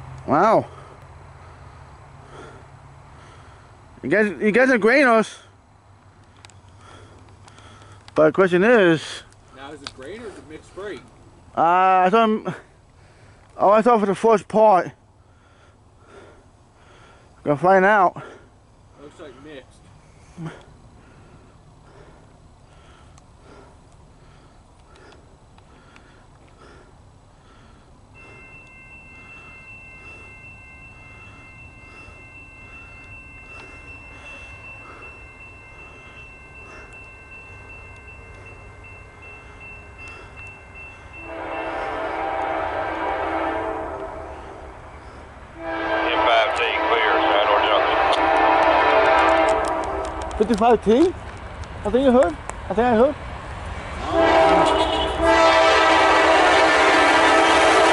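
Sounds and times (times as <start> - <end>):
diesel train rumble: 0.0 - 57.9
locomotive horn blasts: 41.1 - 44.8, 45.5 - 50.6, 54.0 - 57.9.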